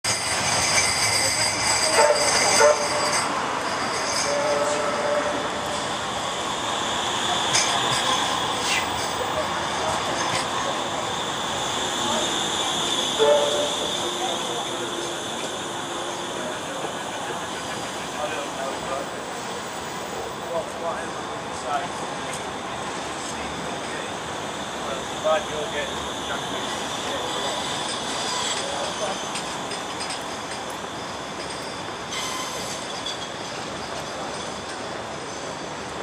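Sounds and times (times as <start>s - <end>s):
trams rumbling past: 0.1s - 36.0s.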